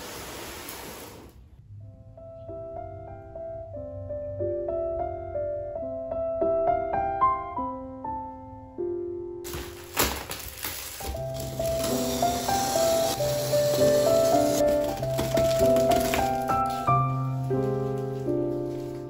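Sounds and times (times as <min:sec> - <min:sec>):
soft piano music: 0:01.6 - 0:19.0
plastic wrap crinkling and tearing: 0:09.5 - 0:16.9.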